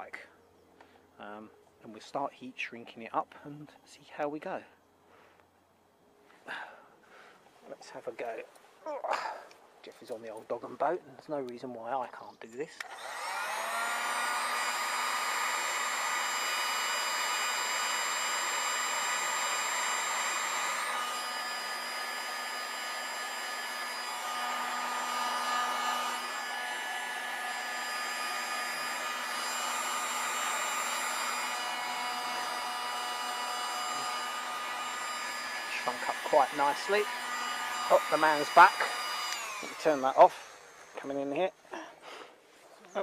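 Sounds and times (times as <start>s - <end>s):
heat gun fan whining: 12.7s - 41.5s.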